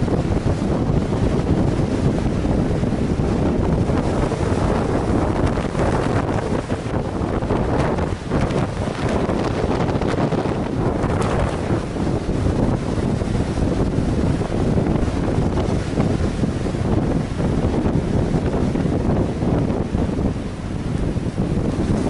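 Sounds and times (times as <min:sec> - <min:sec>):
heavy surf breaking on rocks: 0:00.0 - 0:22.0
wind buffeting microphone: 0:00.0 - 0:22.0.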